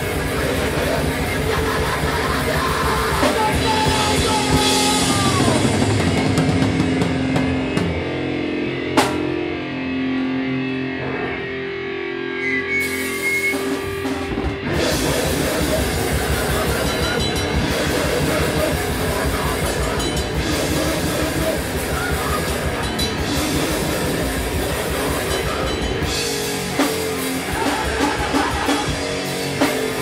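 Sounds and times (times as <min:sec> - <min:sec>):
live heavy rock band: 0:00.0 - 0:30.0
ringing guitar notes: 0:15.7 - 0:28.1.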